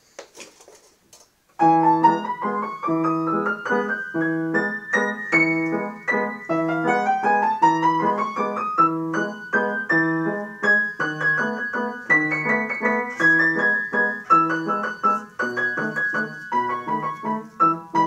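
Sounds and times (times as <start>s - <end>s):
upright piano playing: 1.6s - 18.0s.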